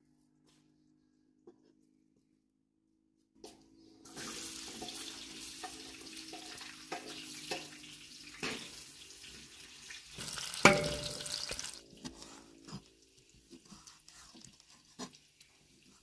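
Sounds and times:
onion sizzling in hot oil: 4.1s - 11.8s
wooden board knocking on wok: 10.6s - 11.4s.

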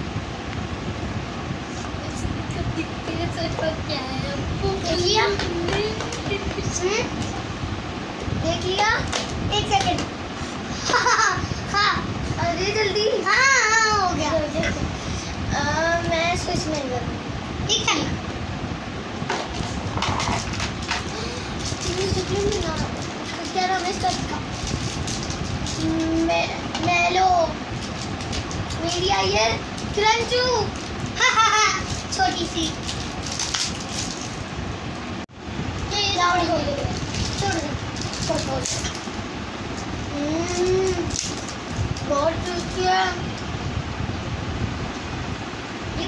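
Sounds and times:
steady rushing noise: 0.0s - 46.0s.

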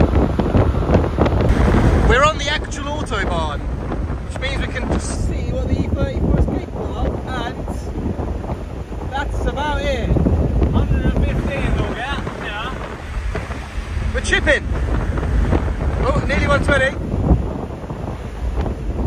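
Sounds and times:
road rumble: 0.0s - 19.0s
wind buffeting through window: 0.0s - 19.0s
wind rush inside car: 0.0s - 19.0s
man's voice: 2.0s - 3.6s, 4.3s - 7.9s, 9.1s - 12.9s, 14.1s - 14.7s, 16.0s - 17.0s.

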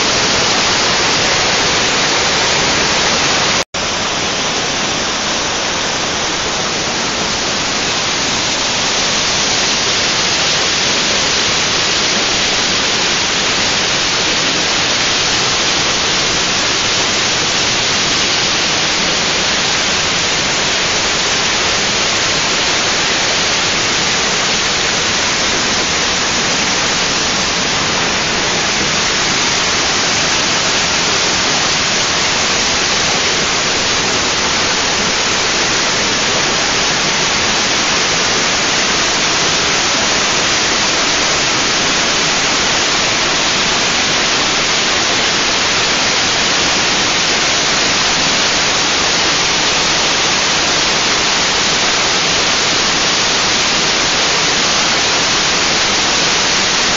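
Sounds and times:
whitewater rushing over rocks: 0.0s - 56.9s.

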